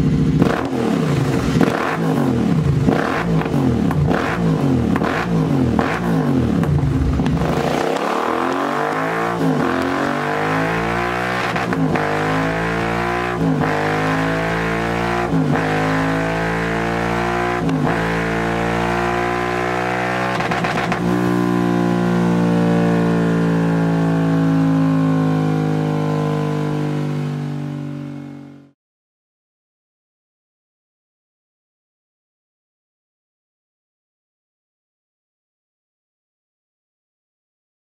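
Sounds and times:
motorcycle engine revving: 0:00.0 - 0:28.8.

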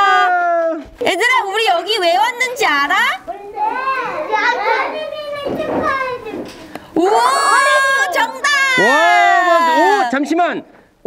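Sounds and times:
children calling out: 0:02.4 - 0:10.2.

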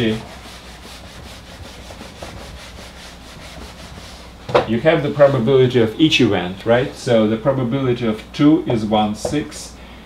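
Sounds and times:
eraser rubbing on whiteboard: 0:00.0 - 0:04.4.

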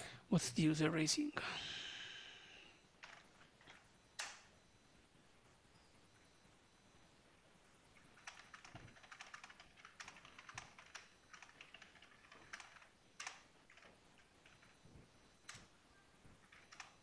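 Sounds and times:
faint keyboard typing: 0:02.9 - 0:04.5, 0:07.9 - 0:17.0.

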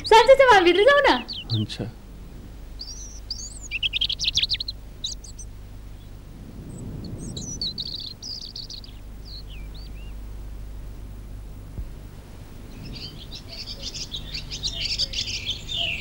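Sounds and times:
low hum: 0:00.0 - 0:16.0
small birds chirping: 0:00.0 - 0:16.0.

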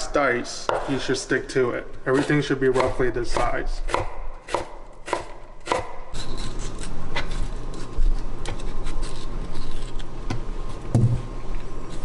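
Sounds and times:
knife chopping on wooden board: 0:00.7 - 0:01.0, 0:02.1 - 0:06.0.

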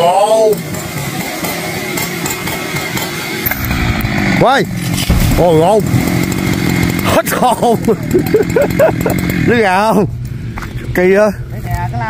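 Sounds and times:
chainsaw cutting wood: 0:00.6 - 0:09.6.

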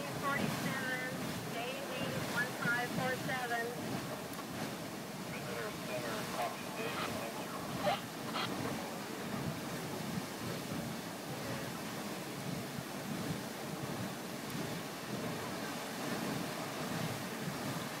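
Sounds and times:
geyser water and steam rushing: 0:00.0 - 0:18.0.

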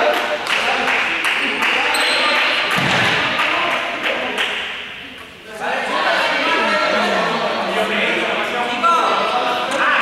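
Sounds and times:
overlapping voices and shouts: 0:00.0 - 0:04.8.

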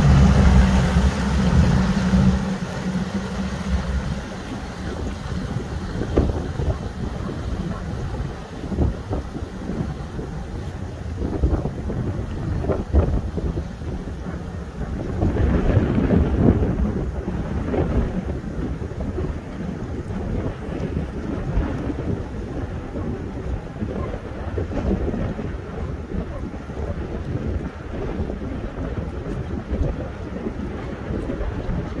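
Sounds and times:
speedboat outboard motors: 0:00.0 - 0:32.0
wind buffeting microphone: 0:00.0 - 0:32.0.

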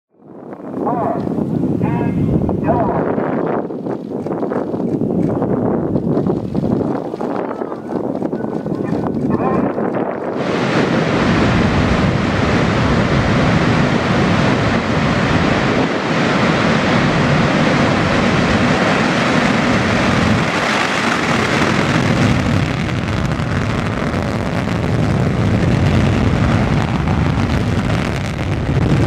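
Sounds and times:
rocket engines roaring: 0:00.1 - 0:29.0.

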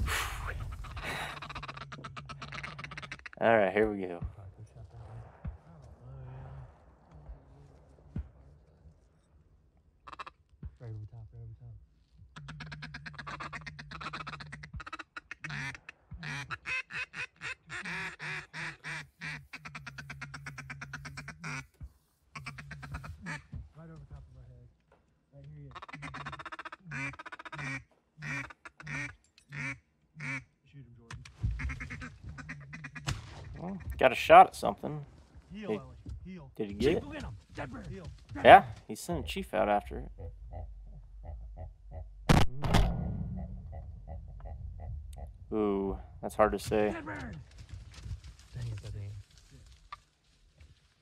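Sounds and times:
duck quacking: 0:00.6 - 0:03.5, 0:12.4 - 0:21.7, 0:22.4 - 0:23.5, 0:25.7 - 0:30.5, 0:40.0 - 0:42.4.

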